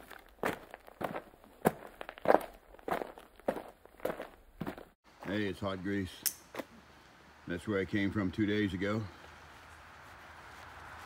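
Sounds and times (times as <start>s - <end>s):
footsteps walking: 0.0s - 5.5s.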